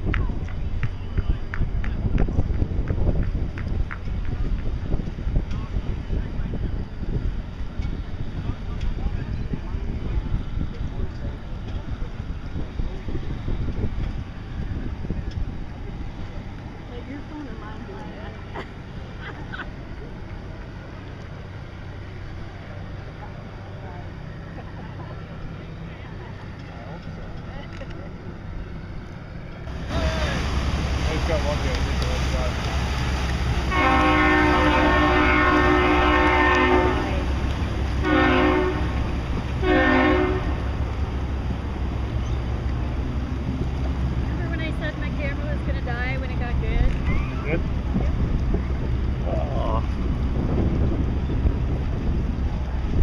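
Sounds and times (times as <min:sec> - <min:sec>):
wind buffeting microphone: 0:00.0 - 0:19.0, 0:28.1 - 0:53.0
low engine drone: 0:00.0 - 0:53.0.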